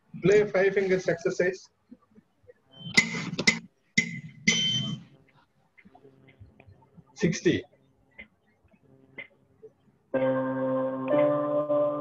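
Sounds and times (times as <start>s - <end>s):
electronic keyboard notes: 10.1s - 12.0s.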